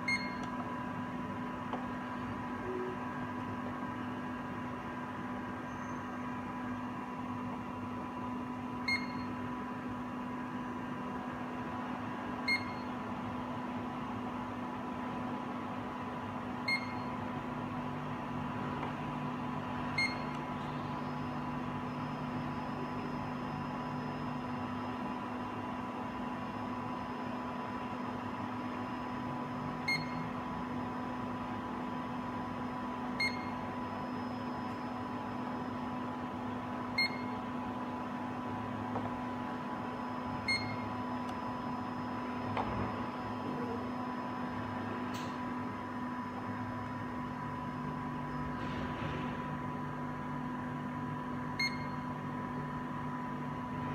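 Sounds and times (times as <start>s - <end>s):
machine electrical hum: 0.0s - 53.9s.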